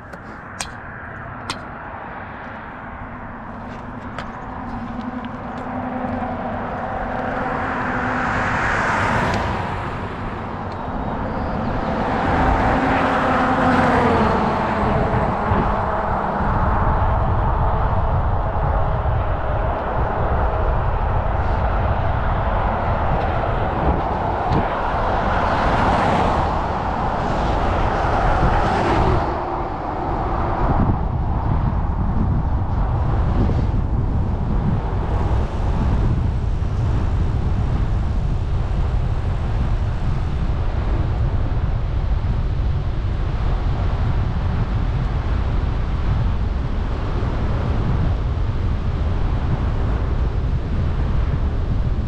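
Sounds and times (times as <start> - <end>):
vehicles passing: 0.0 - 52.0
wind on microphone: 0.0 - 52.0.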